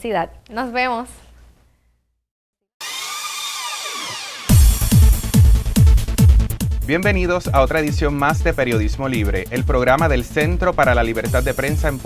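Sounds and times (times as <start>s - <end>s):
theme music: 4.1s - 12.0s.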